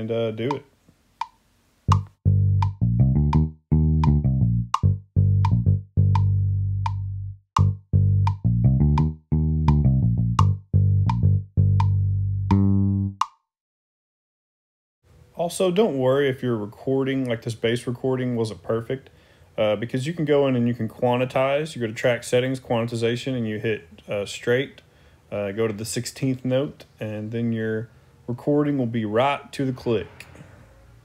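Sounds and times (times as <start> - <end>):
metronome click: 1.2 - 13.4
electric bass line: 1.9 - 13.3.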